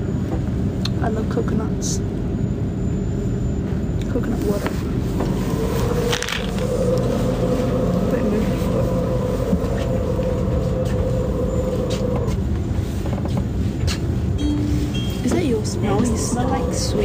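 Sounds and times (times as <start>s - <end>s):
train rumble: 0.0s - 17.0s
humming tone: 2.2s - 12.6s, 14.3s - 17.0s.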